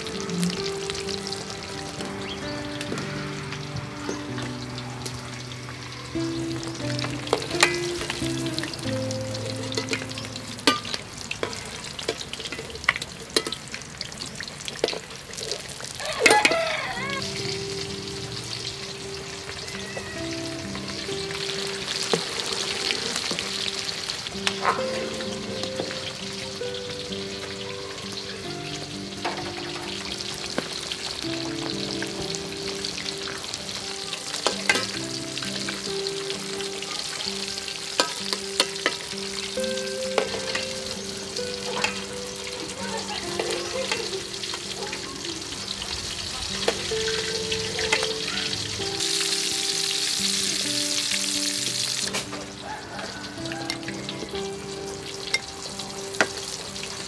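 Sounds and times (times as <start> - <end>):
fish sizzling in hot oil: 0.0 - 57.0.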